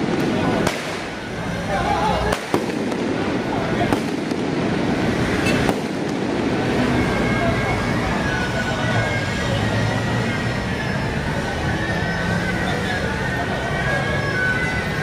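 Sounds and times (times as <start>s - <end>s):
firecracker bangs: 0.0s - 1.3s, 2.0s - 6.9s
crowd and street din: 0.0s - 15.0s.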